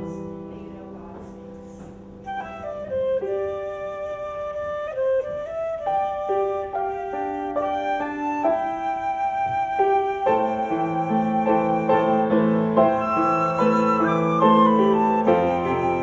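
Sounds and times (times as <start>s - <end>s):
lower instrument part: 0.0s - 16.0s
concert flute slow melody: 2.0s - 16.0s.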